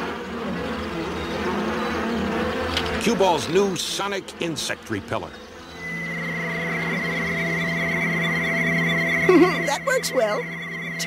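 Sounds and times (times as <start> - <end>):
cartoon insect swarm buzzing: 0.0 - 11.0.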